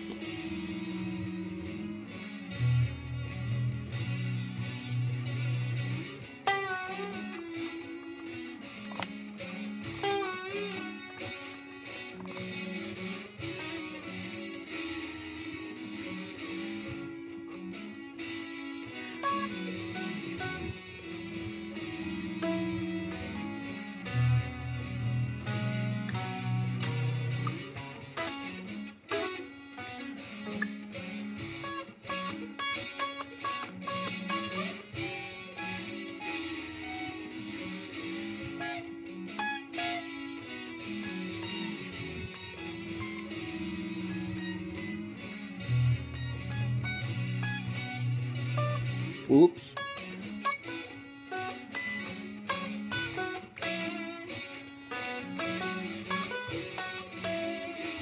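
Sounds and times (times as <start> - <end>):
electric guitar playing: 0.0 - 58.0
looped guitar layers: 0.0 - 58.0.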